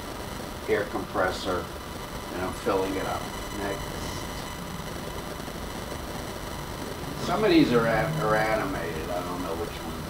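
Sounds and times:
faint steady high tones: 0.0s - 10.0s
low hum: 0.0s - 10.0s
room hiss: 0.0s - 10.0s.

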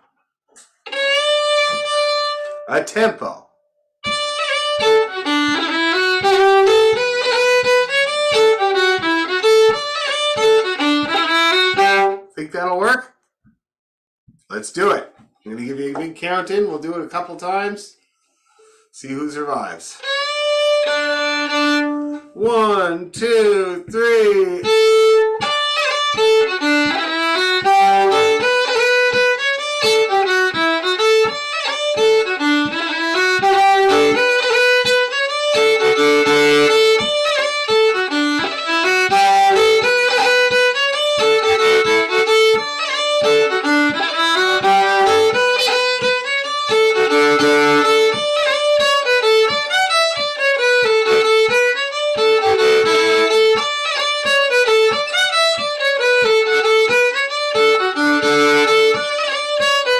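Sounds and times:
fiddle playing quick tune: 0.8s - 3.1s, 4.0s - 12.3s, 19.9s - 59.9s.

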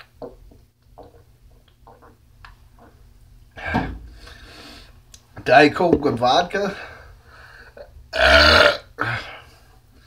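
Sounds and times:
man burping: 8.1s - 9.3s.

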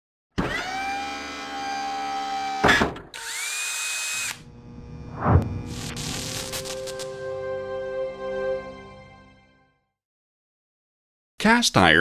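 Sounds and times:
drill-like whine: 0.4s - 7.2s
hissy whine: 4.4s - 7.2s
low whoosh: 4.7s - 5.7s
sharp swoosh: 4.9s - 6.9s.

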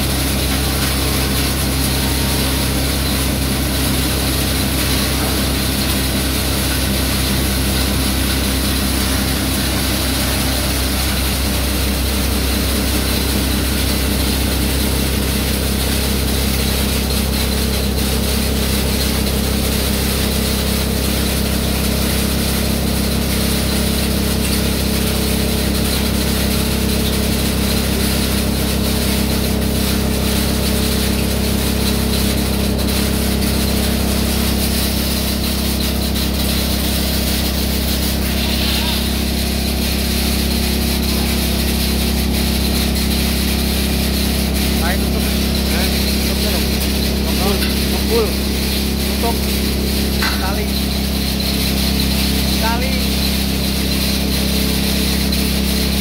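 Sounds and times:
electric motor hum: 0.0s - 56.0s
grinding mill crushing charcoal: 0.0s - 56.0s.

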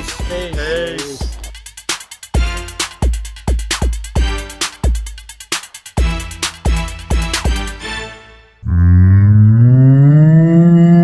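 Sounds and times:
cow mooing: 8.6s - 11.0s.

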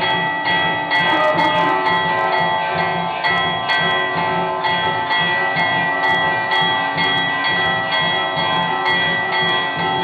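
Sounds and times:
low rhythmic beat: 0.0s - 10.0s
temple bells ringing: 0.0s - 10.0s.

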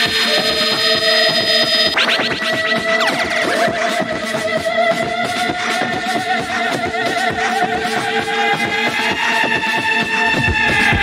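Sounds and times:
wordless warbling vocals: 2.0s - 11.0s
looped percussion beat: 8.8s - 11.0s.

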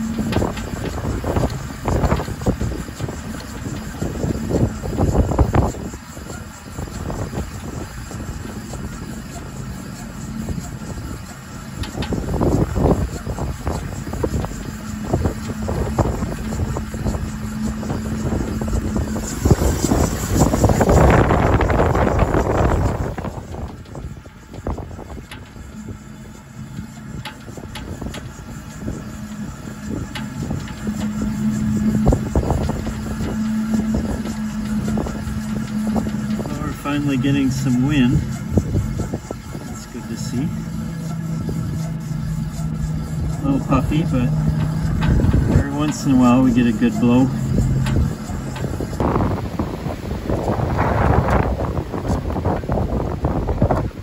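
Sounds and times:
gusty wind buffeting microphone: 0.0s - 54.0s
steady low hum: 0.0s - 54.0s.

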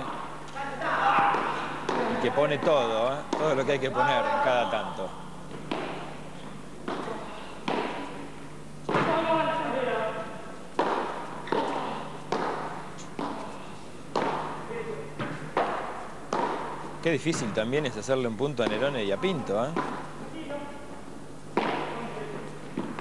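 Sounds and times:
padel ball knocks: 10.8s - 13.4s, 15.2s - 17.5s, 21.6s - 22.0s.

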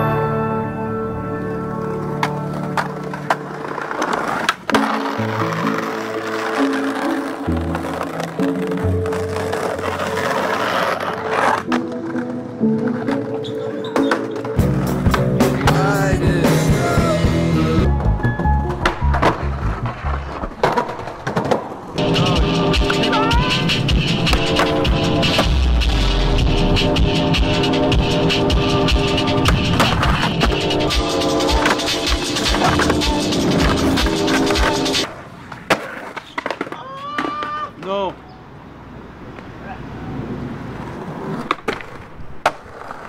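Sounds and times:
skateboard wheels rolling: 1.4s - 43.0s
skateboard popping and landing: 2.0s - 15.8s, 18.6s - 25.6s, 29.3s - 38.0s, 40.7s - 43.0s
music with steady beat: 14.6s - 19.1s, 22.0s - 35.0s
person singing: 15.4s - 18.2s.

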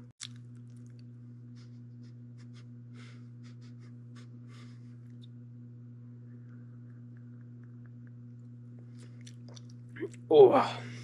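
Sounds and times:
steady low hum: 0.0s - 11.0s
man exclaiming: 10.3s - 10.9s.

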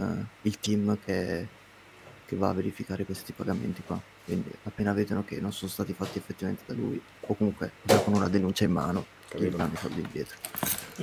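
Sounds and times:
light metallic jingle: 10.3s - 11.0s.

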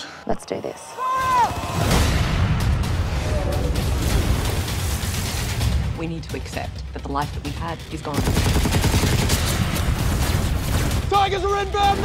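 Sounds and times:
gunfire: 8.1s - 11.1s.

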